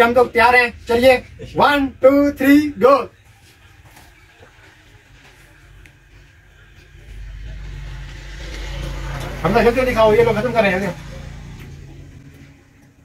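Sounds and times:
low steady rumble: 0:00.0 - 0:03.0, 0:05.6 - 0:13.0.

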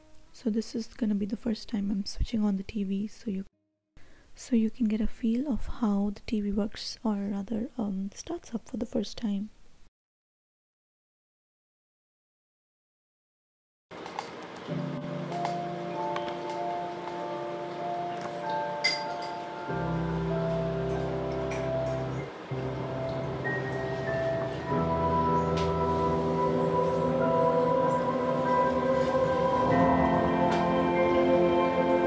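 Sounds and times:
slow ambient music: 0:14.0 - 0:32.0.

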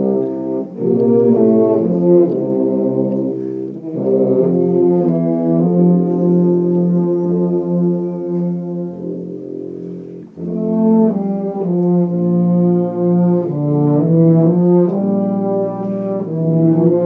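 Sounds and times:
tubas and euphoniums playing chords: 0:00.0 - 0:17.0.

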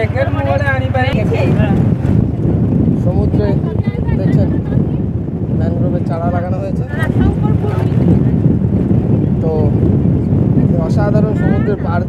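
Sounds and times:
moving vehicle rumble: 0:00.0 - 0:12.0
wind buffeting microphone: 0:00.0 - 0:12.0.

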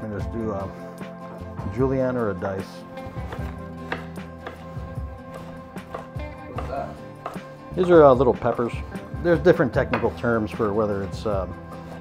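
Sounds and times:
background music: 0:00.0 - 0:12.0
knife striking cutting board: 0:03.3 - 0:04.7.

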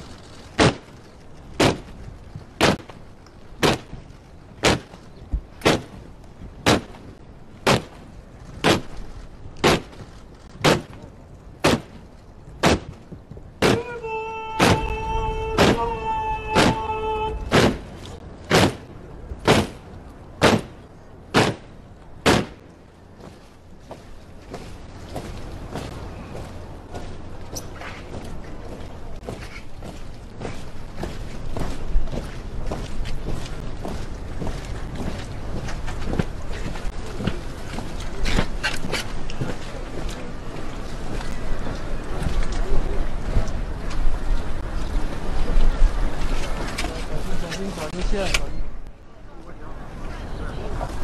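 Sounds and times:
wind and rain on microphone: 0:00.0 - 0:51.0
marching boots on wet pavement: 0:00.2 - 0:20.8, 0:21.4 - 0:48.4.

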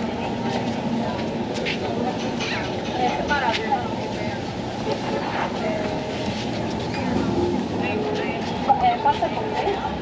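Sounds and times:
hum of street noise: 0:00.0 - 0:10.0
voices of passers-by: 0:00.0 - 0:10.0.

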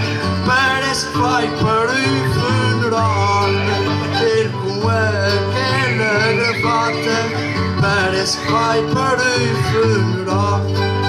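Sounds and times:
acoustic guitar chords: 0:00.0 - 0:11.0
picked guitar melody: 0:00.0 - 0:11.0.

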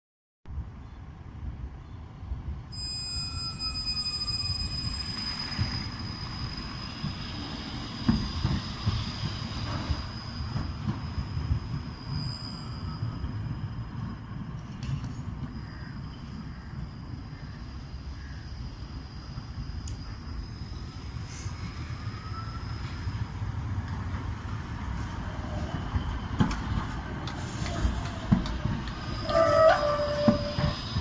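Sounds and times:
tram wheels rumbling on rails: 0:01.2 - 0:31.0.

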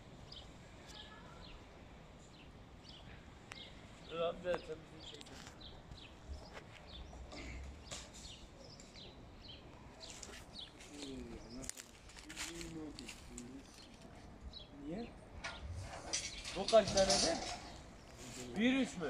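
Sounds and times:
distant voices talking: 0:00.0 - 0:19.0
small birds chirping: 0:00.0 - 0:19.0.

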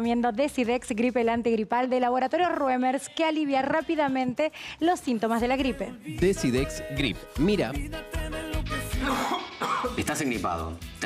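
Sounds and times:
music: 0:00.0 - 0:11.0
person coughing: 0:09.0 - 0:10.1.

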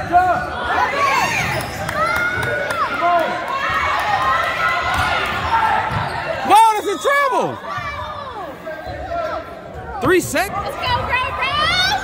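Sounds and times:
murmur of crowd voices: 0:00.0 - 0:12.0
crowd shouting: 0:00.4 - 0:08.6.

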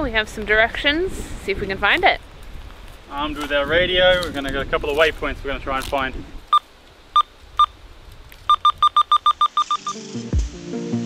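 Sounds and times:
radio keypad beeps: 0:08.5 - 0:10.0
background music: 0:09.7 - 0:11.0.

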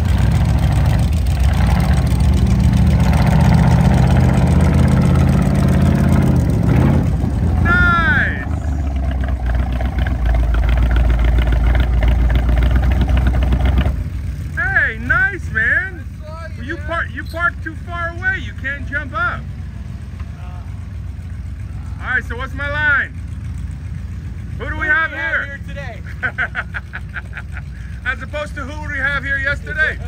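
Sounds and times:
engine running then idling: 0:00.0 - 0:30.0
person calling out: 0:07.6 - 0:08.8.

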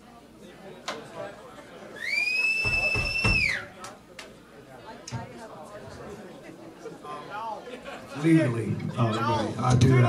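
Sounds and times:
loud high whistle: 0:02.0 - 0:03.7.

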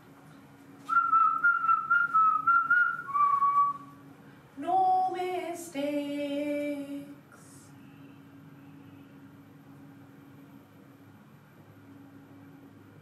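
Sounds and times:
person whistling: 0:00.9 - 0:04.0.

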